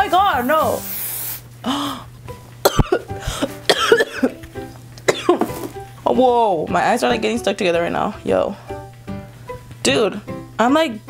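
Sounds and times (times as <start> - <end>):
woman coughing: 2.6 - 4.4, 5.1 - 5.5.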